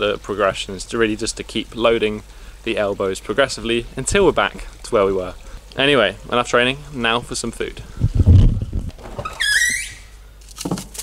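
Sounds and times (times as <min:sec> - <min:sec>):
microphone handling and wind noise: 0:07.8 - 0:09.4
high-pitched squeak: 0:09.2 - 0:10.2.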